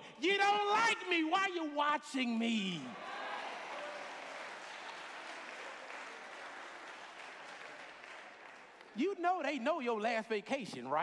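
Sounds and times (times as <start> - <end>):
congregation applauding: 2.9 - 9.6.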